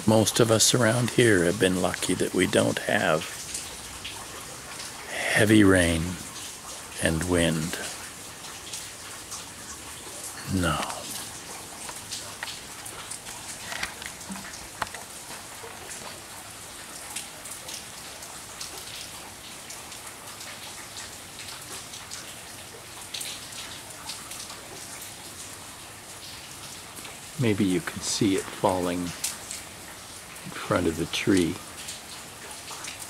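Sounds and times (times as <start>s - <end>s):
rain hissing: 0.0s - 33.0s
raindrops ticking: 0.0s - 33.0s.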